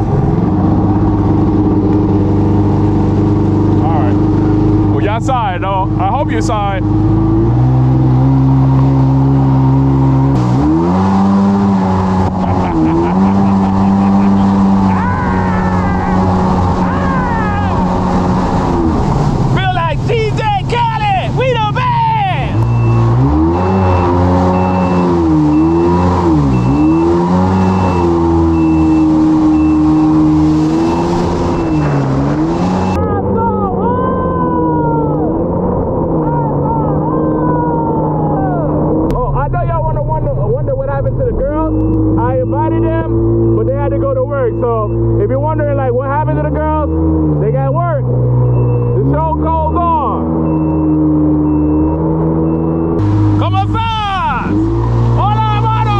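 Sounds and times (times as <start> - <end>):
jet ski engine revving: 0.0 - 55.9.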